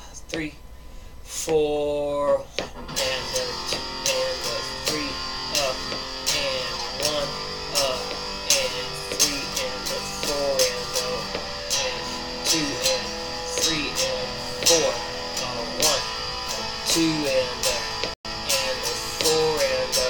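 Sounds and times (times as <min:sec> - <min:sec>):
amplified electric guitar: 0:02.5 - 0:20.0.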